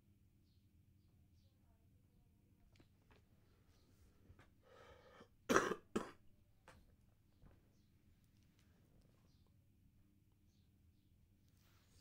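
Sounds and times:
person coughing: 5.5 - 6.2.

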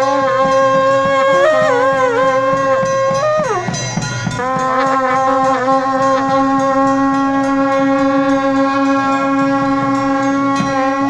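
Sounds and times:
faint drum beats: 0.0 - 11.0
wind instrument long note: 0.0 - 11.0.

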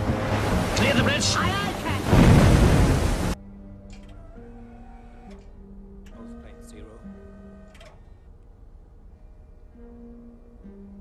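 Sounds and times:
low held musical notes: 0.0 - 11.0.

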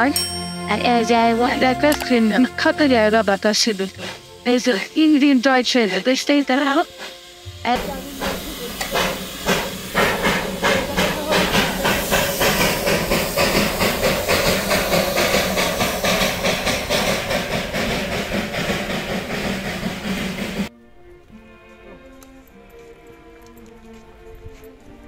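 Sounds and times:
steam hissing: 0.0 - 20.7
steam locomotive exhaust chuffs: 0.0 - 20.7.

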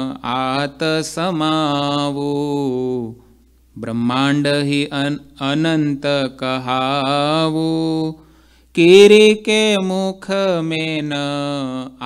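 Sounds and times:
man chanting melodically: 0.0 - 3.2, 3.8 - 8.2, 8.8 - 12.0.

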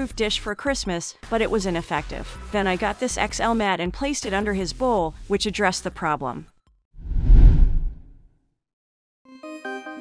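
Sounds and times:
whoosh transition effect: 7.0 - 8.2.

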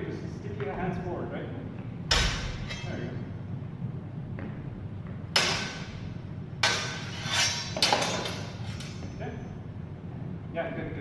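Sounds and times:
steel swords clashing: 2.1 - 3.3, 5.4 - 6.0, 6.6 - 9.2.

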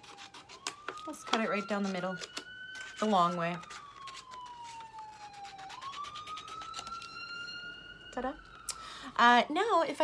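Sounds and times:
scissors snipping paper: 0.0 - 7.1
siren wailing: 0.0 - 9.9.

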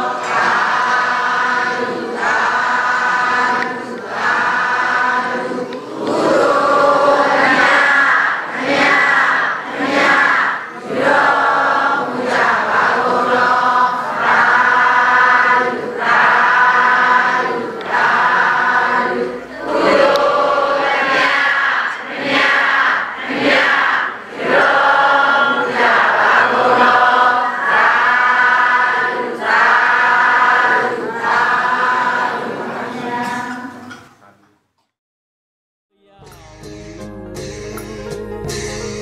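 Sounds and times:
congregation chanting prayers: 0.0 - 34.4.

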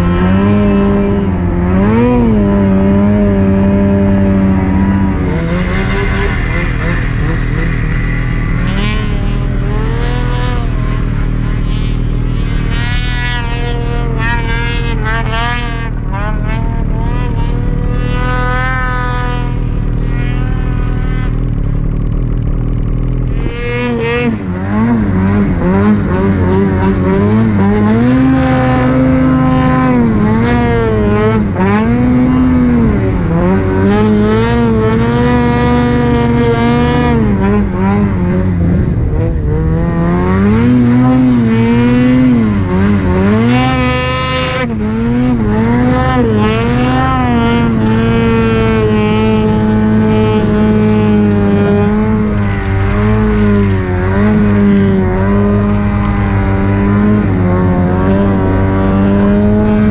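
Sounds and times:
snowmobile engine revving: 0.0 - 59.9.

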